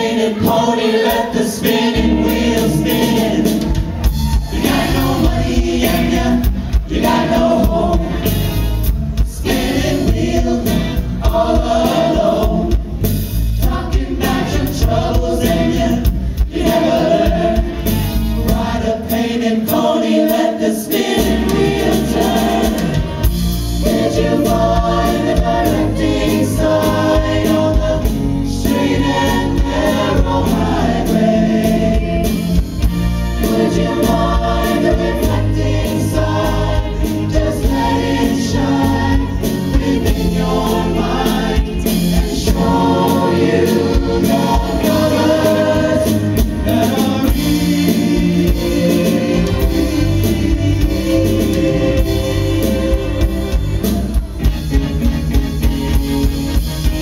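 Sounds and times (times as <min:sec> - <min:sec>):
choir singing: 0:00.0 - 0:55.3
live band with drums: 0:00.0 - 0:57.0.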